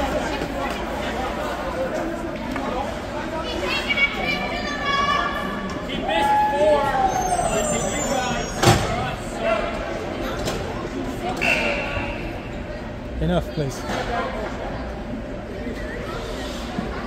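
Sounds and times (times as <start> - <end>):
voices echoing in ice rink: 0.0 - 17.0.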